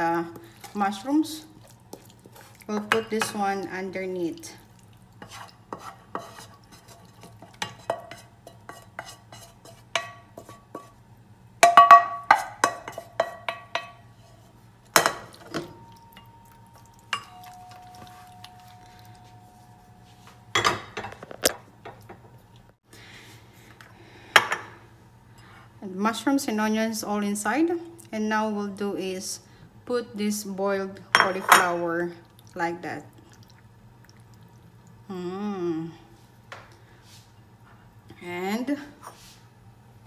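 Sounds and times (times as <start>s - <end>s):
spatula scraping ceramic dish: 5.2s - 11.0s.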